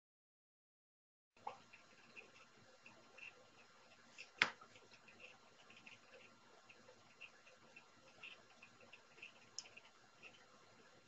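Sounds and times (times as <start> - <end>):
faint small ticks: 1.4 - 10.9.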